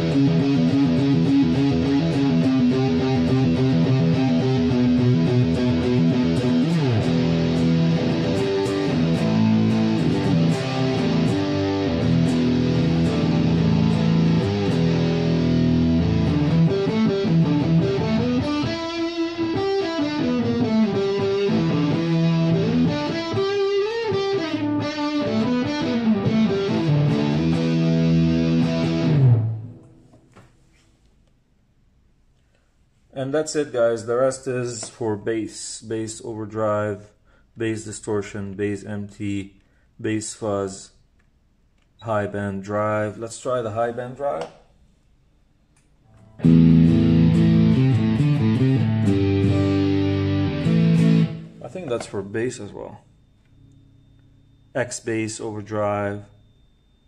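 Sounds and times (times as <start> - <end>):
distorted electric guitar: 0.0 - 30.0, 46.2 - 52.2.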